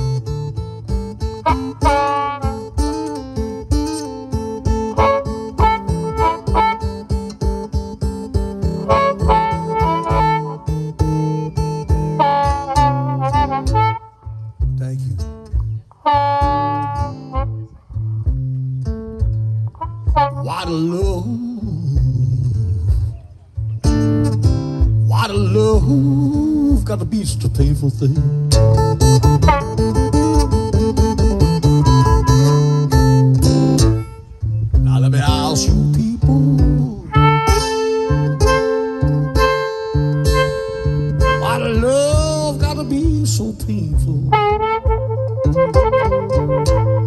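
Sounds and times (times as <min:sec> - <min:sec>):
harmonica playing: 0:00.0 - 0:14.7, 0:16.0 - 0:17.8, 0:28.4 - 0:34.5, 0:36.5 - 0:43.2, 0:44.1 - 0:47.0
acoustic guitar boogie rhythm: 0:00.0 - 0:47.0.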